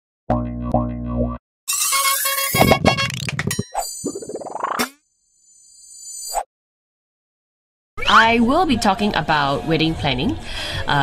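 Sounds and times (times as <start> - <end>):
playful electronic music: 0.3 - 5.0
high ringing tone: 1.7 - 4.5, 5.1 - 6.4
cartoon sound effects: 1.7 - 4.9.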